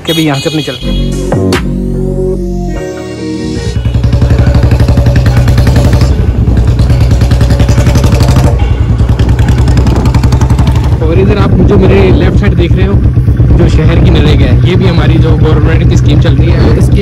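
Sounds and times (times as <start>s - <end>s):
motorcycle engine running: 3.6s - 17.0s.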